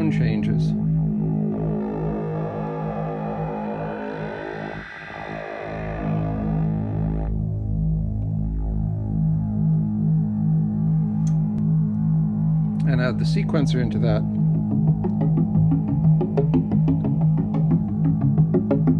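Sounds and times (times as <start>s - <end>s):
synthesizer drone with pulsing notes: 0.0s - 18.9s.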